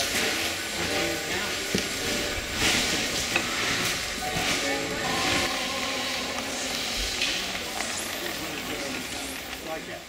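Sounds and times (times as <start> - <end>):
indistinct chatter: 0.0 - 10.0
steady hiss: 0.0 - 10.0.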